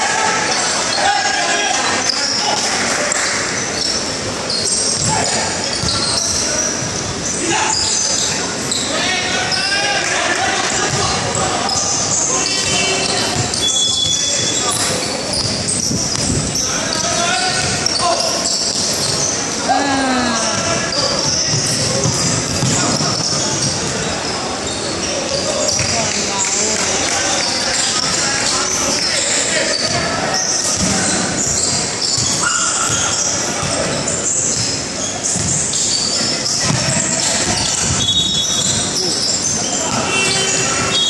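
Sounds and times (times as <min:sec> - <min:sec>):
people calling out and talking: 0:00.0 - 0:41.0
sneaker squeaks: 0:00.5 - 0:09.9, 0:10.6 - 0:41.0
basketball bouncing on court: 0:04.7 - 0:06.9, 0:15.3 - 0:16.6, 0:20.6 - 0:24.0, 0:25.3 - 0:26.0, 0:30.6 - 0:33.9, 0:34.5 - 0:39.0.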